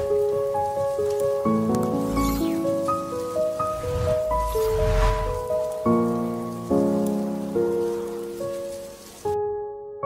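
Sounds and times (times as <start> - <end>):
steady rain: 0.0 - 9.5
slow piano chords: 0.0 - 10.0.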